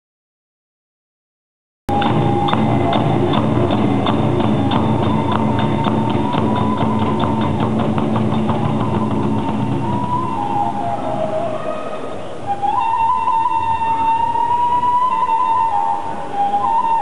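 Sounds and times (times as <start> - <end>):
drum strokes: 1.9 - 11.4
bamboo flute high note: 1.9 - 17.0.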